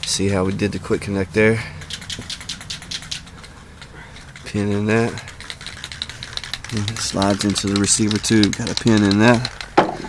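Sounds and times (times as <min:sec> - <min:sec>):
rapid light clicking: 0:00.0 - 0:10.0.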